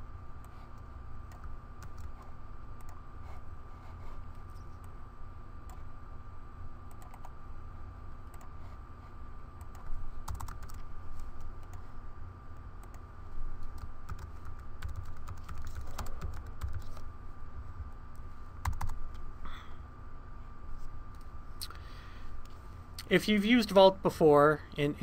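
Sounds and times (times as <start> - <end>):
faint background hum: 0.0 - 25.0
computer keyboard typing: 0.4 - 3.0, 6.9 - 7.4, 8.2 - 8.6, 9.6 - 11.9, 13.6 - 17.1, 18.6 - 19.2.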